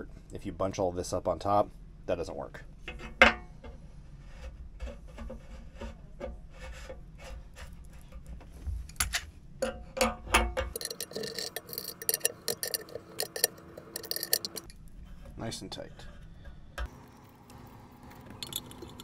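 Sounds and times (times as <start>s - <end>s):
taped pipe threads scraping: 4.2s - 8.5s, 10.7s - 16.4s
wrench clicking: 10.7s - 14.7s.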